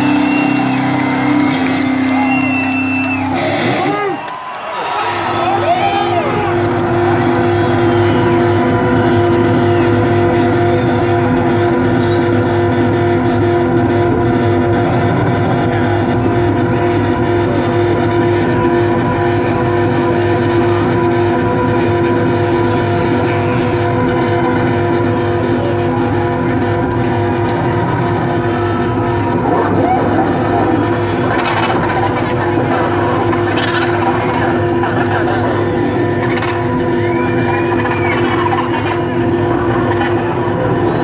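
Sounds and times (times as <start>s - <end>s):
sustained musical drone: 0.0s - 4.1s, 5.2s - 41.0s
crowd noise: 0.0s - 41.0s.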